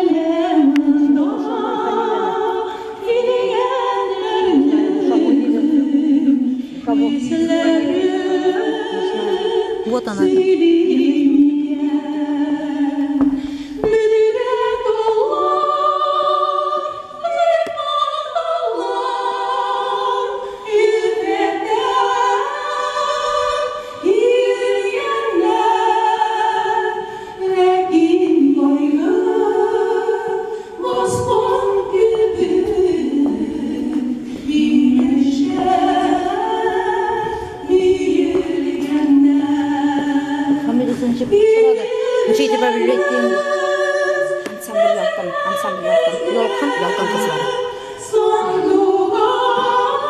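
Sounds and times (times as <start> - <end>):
two women singing a duet: 0.0 - 50.0.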